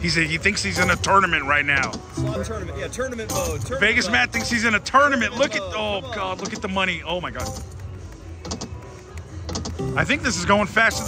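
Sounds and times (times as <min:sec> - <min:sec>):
slot machine game music: 0:00.0 - 0:08.0, 0:09.5 - 0:11.0
slot machine reels clicking: 0:00.4 - 0:04.8, 0:06.2 - 0:08.8.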